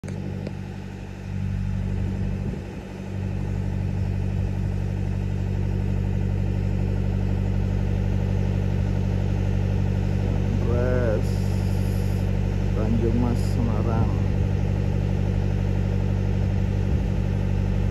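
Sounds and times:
diesel engine droning: 0.0 - 17.9.

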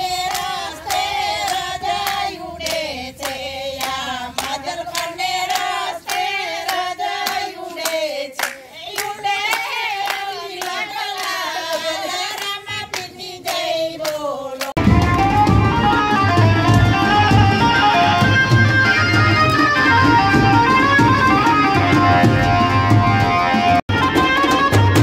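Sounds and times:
women singing in unison: 0.0 - 14.8
hand claps: 0.3 - 15.7, 16.6 - 17.1.

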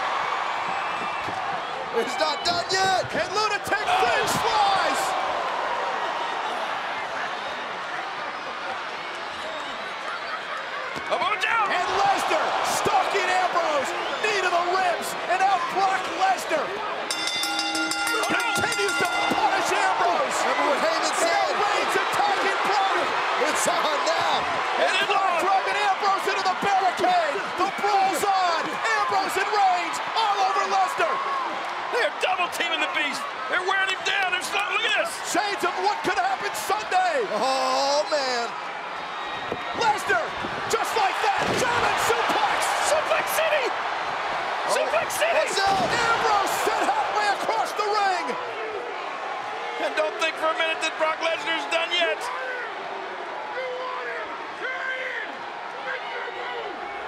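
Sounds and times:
crowd yelling and screaming: 0.0 - 57.0.

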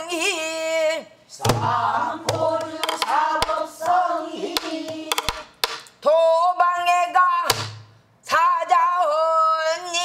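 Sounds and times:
barrel drum stick strikes: 1.4 - 4.0, 4.6 - 5.9.

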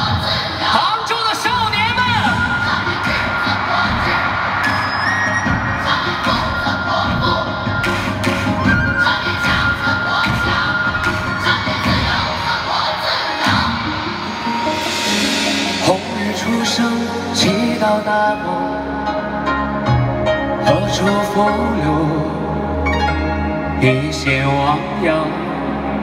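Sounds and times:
audience cheering and screaming: 1.4 - 17.6
song intro music: 1.5 - 26.0.

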